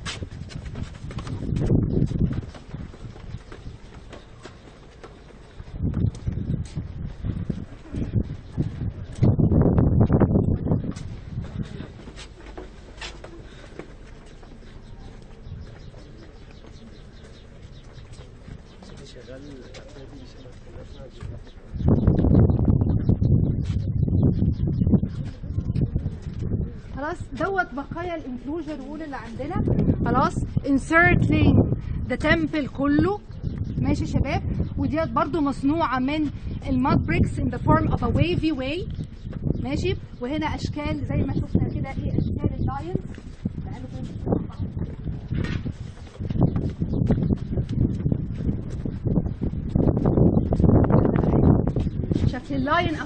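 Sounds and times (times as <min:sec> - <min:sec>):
footsteps on stone paving: 0:00.0 - 0:21.8, 0:25.1 - 0:30.4, 0:37.6 - 0:40.1, 0:40.7 - 0:53.0
loud low rumbling: 0:05.5 - 0:12.1, 0:20.7 - 0:28.4, 0:29.2 - 0:53.0
people talking: 0:18.9 - 0:21.8, 0:25.0 - 0:33.2, 0:33.8 - 0:39.0, 0:39.6 - 0:44.7, 0:52.1 - 0:53.0.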